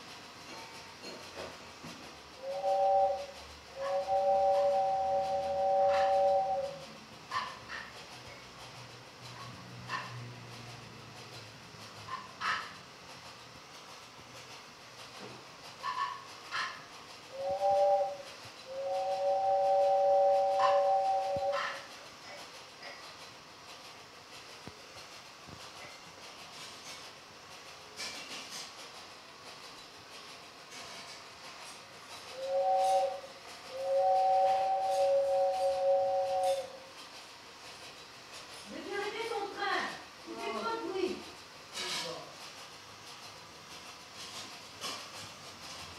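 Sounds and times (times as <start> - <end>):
faint clicks and rattles: 0.0 - 19.4, 20.7 - 33.8, 35.6 - 45.9
toy train whistle toots: 2.4 - 7.8, 15.8 - 21.9, 32.3 - 36.8.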